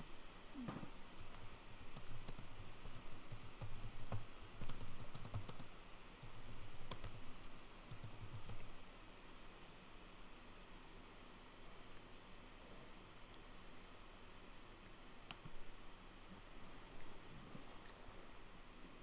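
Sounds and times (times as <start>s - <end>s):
typing on computer keyboard: 1.2s - 8.8s.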